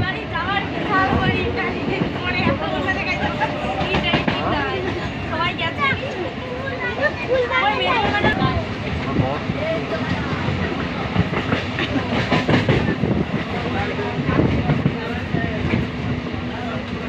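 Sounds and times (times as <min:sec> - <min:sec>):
train rumble inside carriage: 0:00.0 - 0:17.0.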